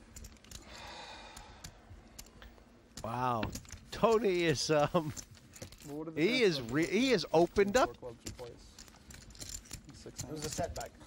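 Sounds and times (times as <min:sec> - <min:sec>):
poker chips clicking: 0:00.0 - 0:05.9.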